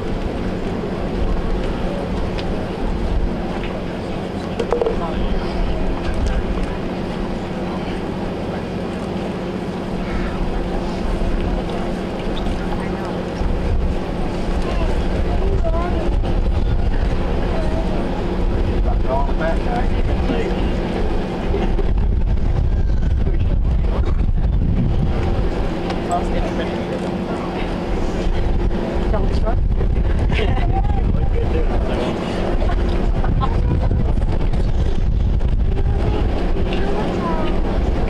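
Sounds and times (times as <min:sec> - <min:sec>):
faint crowd voices: 0:00.0 - 0:38.0
steady low hum: 0:00.0 - 0:38.0
wind rumbling on microphone: 0:00.0 - 0:38.0.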